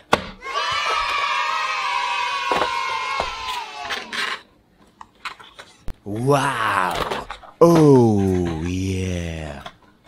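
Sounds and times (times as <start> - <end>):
children cheering: 0.4 - 4.2.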